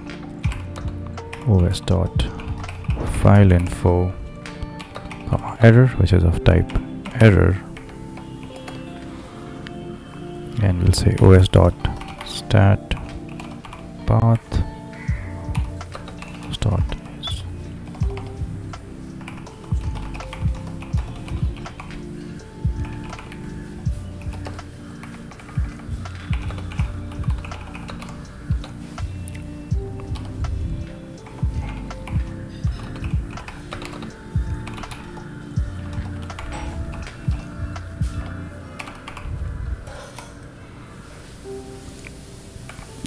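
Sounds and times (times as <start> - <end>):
background music: 0.0 - 43.0
computer keyboard typing: 0.3 - 3.8, 4.4 - 5.6, 11.6 - 14.4, 15.0 - 17.3, 19.1 - 23.5, 24.2 - 28.9, 31.2 - 39.4.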